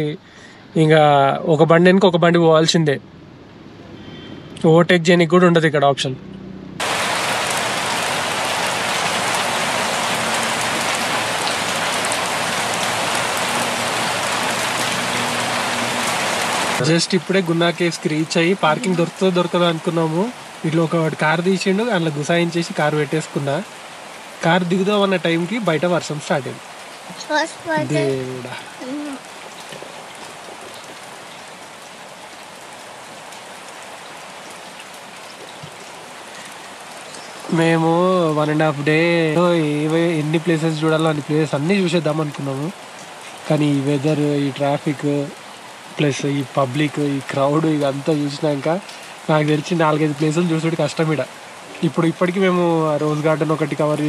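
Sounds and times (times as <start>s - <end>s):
rain falling on car glass: 6.8s - 54.0s.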